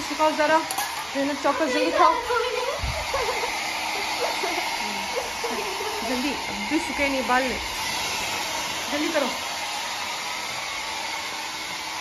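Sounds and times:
hair dryer blowing: 0.0 - 12.0
voices talking: 0.2 - 7.8.

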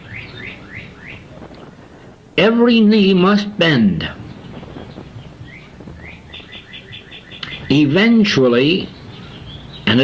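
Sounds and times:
bird chirping faintly: 0.0 - 1.7, 4.2 - 10.0.

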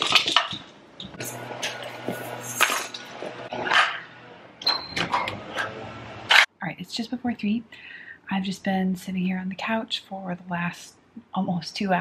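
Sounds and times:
plastic toys clattering: 0.0 - 0.6.

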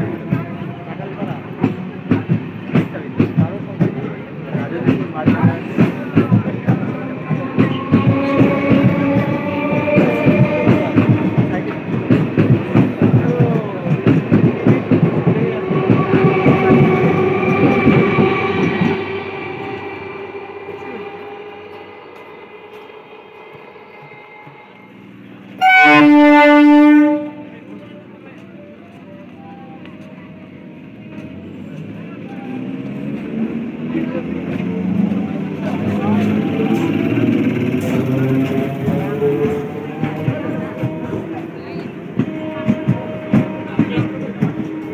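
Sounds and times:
crowd of voices: 0.0 - 44.9.

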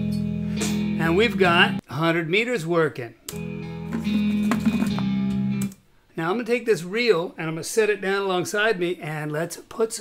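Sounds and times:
guitar music through speakers: 0.0 - 1.8, 3.3 - 5.7.

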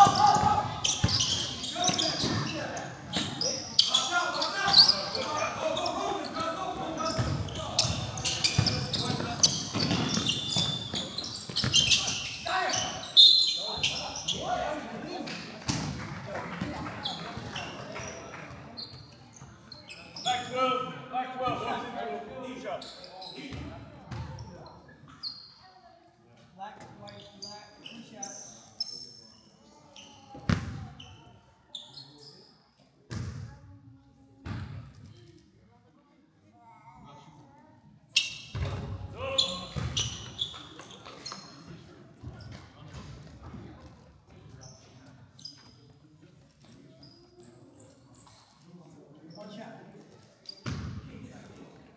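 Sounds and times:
sneakers squeaking on hardwood: 0.0 - 14.8, 17.0 - 20.5, 38.2 - 46.0, 50.5 - 51.1
indistinct voices in echoing hall: 0.0 - 51.9.

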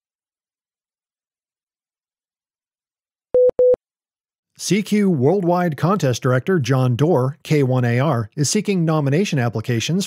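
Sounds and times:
short beeps: 3.4 - 3.8.

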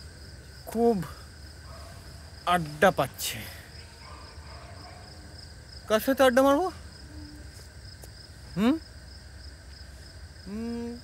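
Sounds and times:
crickets chirping: 0.0 - 11.0
man calling out: 8.6 - 8.8.

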